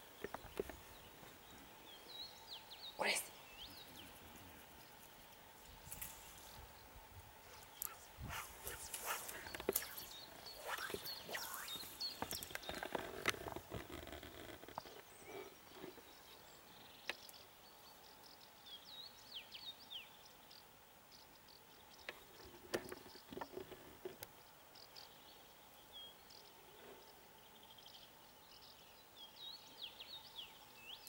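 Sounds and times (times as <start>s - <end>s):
small birds chirping: 0.0s - 31.0s.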